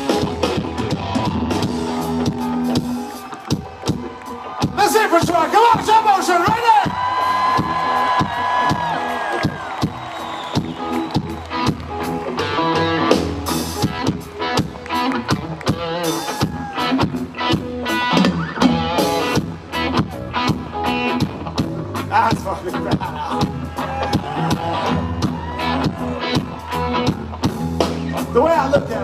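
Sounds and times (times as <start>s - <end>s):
guitar riffs: 0.0s - 29.0s
live rock band playing loud: 0.0s - 29.0s.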